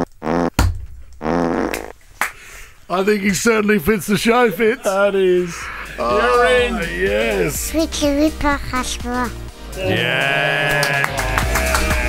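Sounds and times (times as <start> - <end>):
fart sounds: 0.0 - 2.0.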